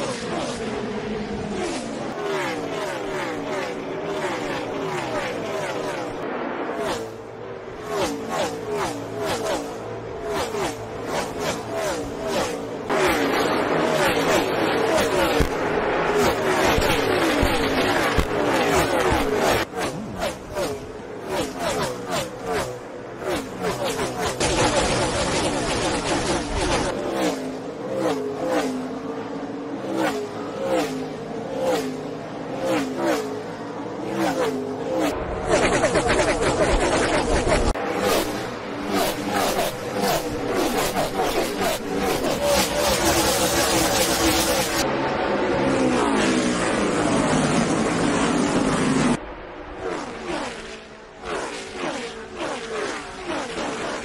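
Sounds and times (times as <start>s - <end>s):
race cars passing at speed: 0.0s - 54.0s.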